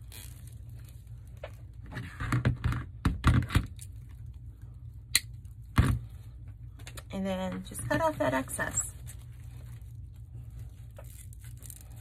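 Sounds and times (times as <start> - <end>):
plastic mesh crinkling: 7.7 - 12.0.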